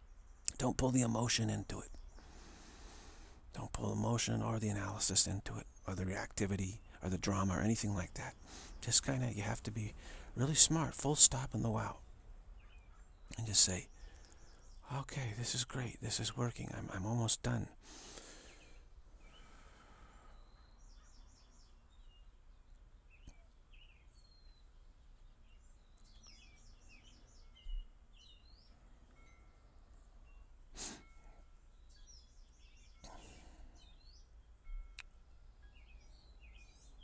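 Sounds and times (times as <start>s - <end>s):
faint birds chirping: 0.0s - 37.0s.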